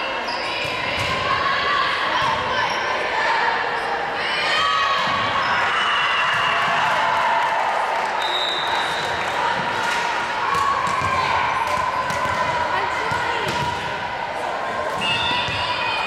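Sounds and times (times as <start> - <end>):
spectators' voices echoing: 0.0 - 16.0.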